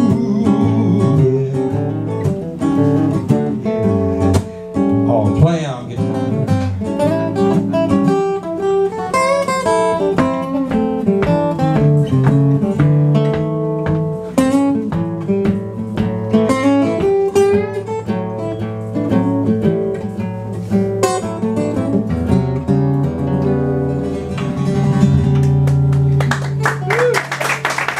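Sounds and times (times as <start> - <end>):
acoustic guitars playing: 0.0 - 27.9.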